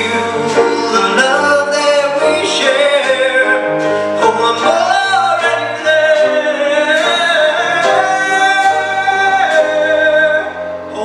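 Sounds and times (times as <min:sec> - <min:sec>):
instrumental accompaniment: 0:00.0 - 0:11.0
man singing into microphone: 0:00.0 - 0:11.0.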